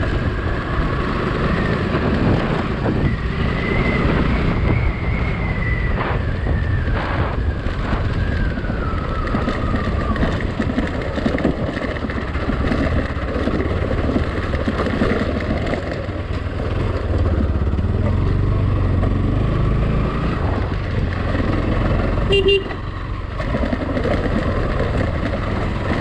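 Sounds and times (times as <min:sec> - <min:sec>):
motorcycle engine on dirt track: 0:00.0 - 0:26.0.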